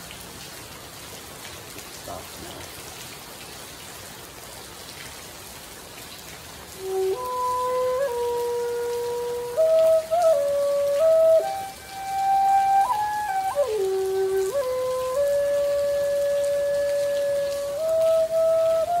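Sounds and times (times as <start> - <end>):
rain pattering on a tent: 0.0 - 19.0
flute playing slow notes: 6.8 - 19.0.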